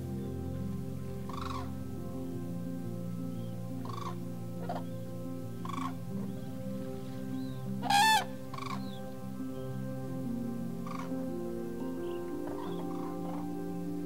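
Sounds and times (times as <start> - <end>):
low sustained music tones: 0.0 - 14.0
crane calls: 7.8 - 9.0.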